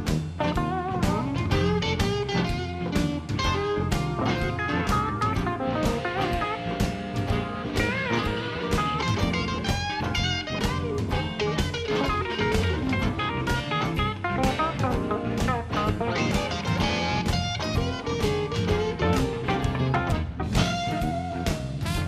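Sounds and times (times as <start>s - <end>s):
blues band playing: 0.0s - 22.0s
drums steady beat: 0.0s - 22.0s
electric guitar lead with bent notes: 0.0s - 22.0s.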